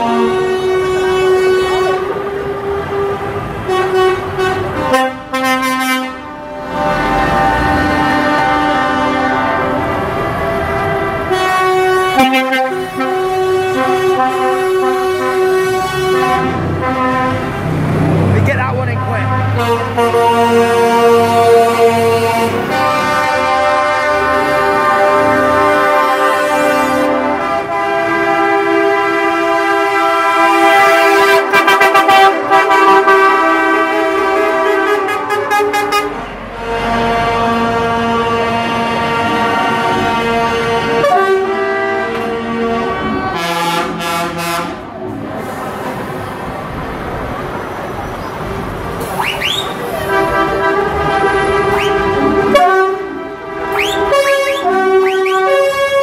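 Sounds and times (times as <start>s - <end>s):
lorry air horns blaring: 0.0s - 17.8s, 18.8s - 45.6s, 48.9s - 56.0s
diesel engines rumbling: 0.0s - 56.0s.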